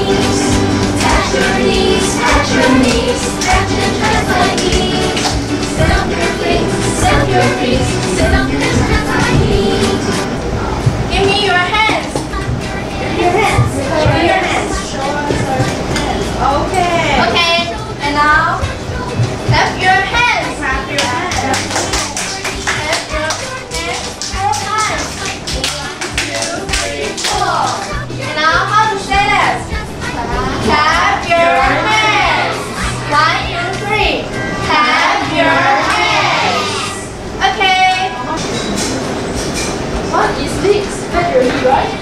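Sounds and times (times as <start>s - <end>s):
music with steady bass line: 0.0s - 11.1s
rhythmic hand-clapping: 0.0s - 17.7s, 18.6s - 30.1s, 34.6s - 36.8s
woman and children talking: 10.5s - 25.5s, 26.4s - 38.4s.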